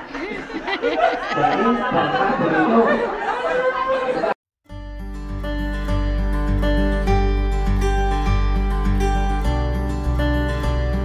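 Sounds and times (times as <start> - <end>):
adults chattering: 0.0 - 4.4
music: 4.6 - 11.0.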